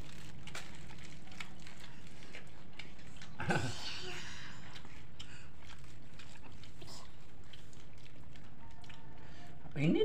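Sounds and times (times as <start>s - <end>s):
plastic snack packets rustling: 0.0s - 3.6s
chewing: 0.0s - 10.0s
low background hum: 0.0s - 10.0s.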